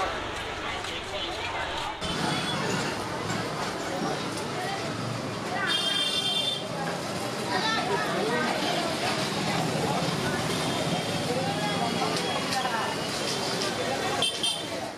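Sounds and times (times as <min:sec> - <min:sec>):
people talking: 0:00.0 - 0:14.9
traffic: 0:00.0 - 0:14.9.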